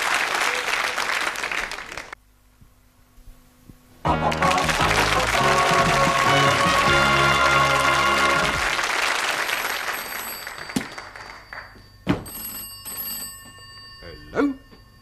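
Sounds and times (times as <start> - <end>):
theme music: 4.1 - 8.8
telephone bell ringing: 9.6 - 15.0.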